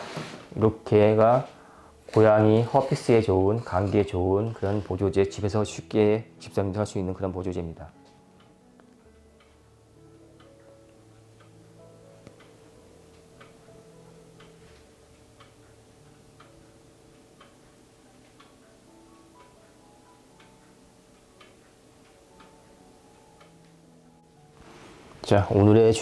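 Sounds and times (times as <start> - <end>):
soft background music: 0.0 - 26.0
clock-like ticking: 8.4 - 24.2.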